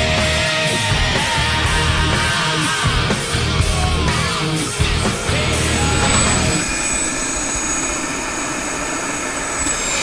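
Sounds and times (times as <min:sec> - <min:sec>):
helicopter turbine and rotor rush: 0:04.1 - 0:10.0
high thin whine: 0:04.8 - 0:10.0.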